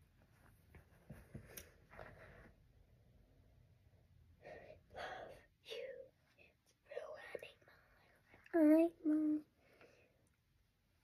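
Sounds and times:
girl whispering: 0:05.0 - 0:09.5.

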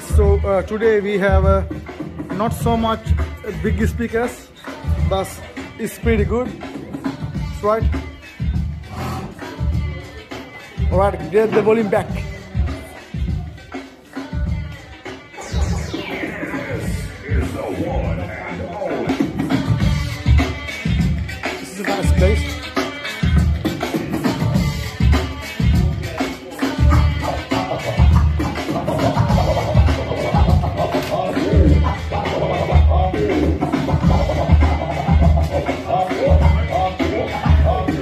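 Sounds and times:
electronic dance music: 0:00.0 - 0:38.0
falling sweep effect: 0:15.4 - 0:18.2
record-style scratches: 0:15.4 - 0:20.0.

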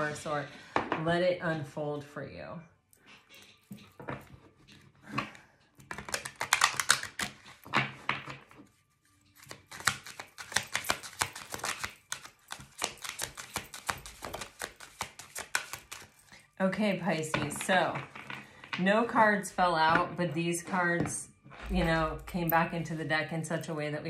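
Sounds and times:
cards being shuffled: 0:05.8 - 0:16.3.

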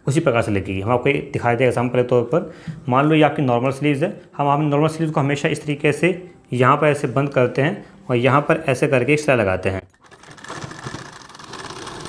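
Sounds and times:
sewing machine stitching: 0:09.9 - 0:12.0.

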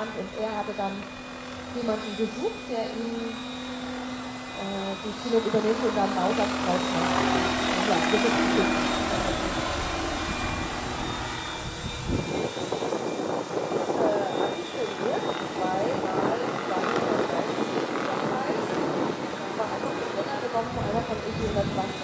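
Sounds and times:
model helicopter rotors whirring: 0:00.0 - 0:22.0.

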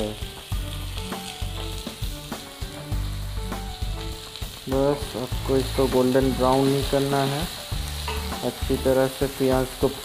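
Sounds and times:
onions sizzling in oil: 0:00.0 - 0:10.0.

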